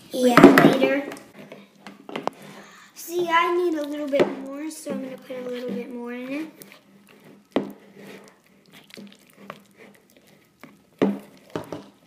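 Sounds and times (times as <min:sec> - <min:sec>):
spoon stirring slime in bowl: 0:03.4 - 0:12.0.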